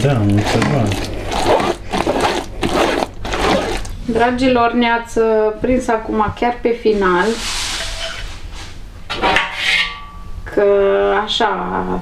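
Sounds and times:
pulp scraped through a sieve: 0.0s - 4.1s, 6.9s - 8.8s.

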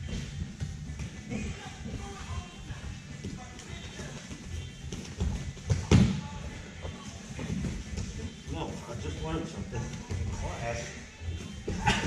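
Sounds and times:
background music: 0.0s - 12.0s
bare feet shuffling on mats: 0.0s - 12.0s.

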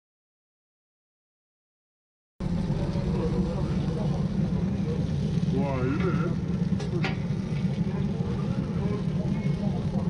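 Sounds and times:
loud low rumble: 2.4s - 10.0s.

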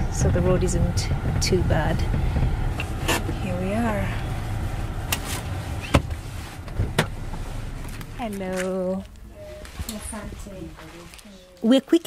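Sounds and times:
car engine rumble: 0.0s - 11.7s.

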